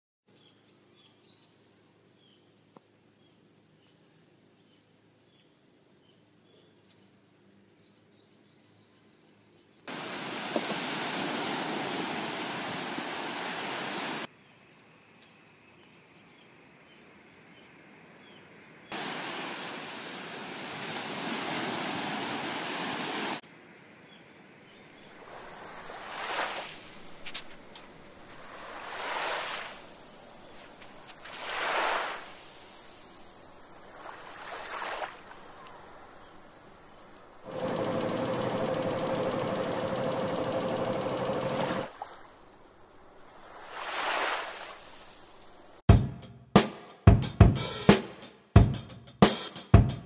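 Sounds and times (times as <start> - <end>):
cicadas buzzing: 1.9 - 22.4, 23.4 - 45.8
surf washing onto beach: 9.9 - 14.3, 18.9 - 23.4, 25.1 - 32.7, 33.8 - 35.8, 37.4 - 45.7.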